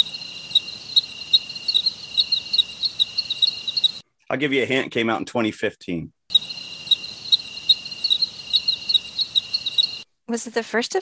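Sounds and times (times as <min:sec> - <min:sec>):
crickets chirping: 0:00.0 - 0:04.0, 0:06.3 - 0:10.0.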